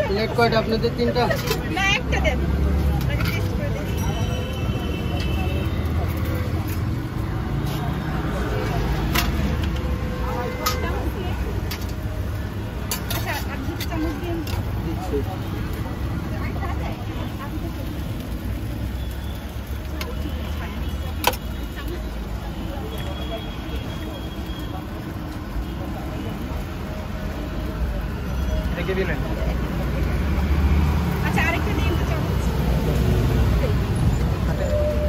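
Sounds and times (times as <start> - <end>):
low traffic rumble: 0.0 - 35.0
metal tongs clinking on pan: 12.8 - 14.7.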